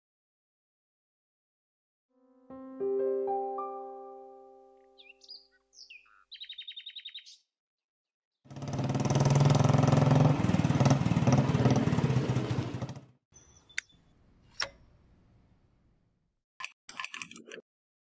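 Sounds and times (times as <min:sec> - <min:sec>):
birds chirping: 0:04.8 - 0:07.5, 0:13.4 - 0:14.2
motorcycle engine running: 0:08.5 - 0:13.2.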